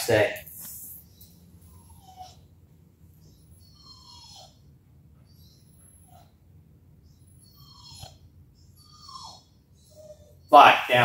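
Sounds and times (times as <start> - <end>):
dog whining: 1.1 - 10.5.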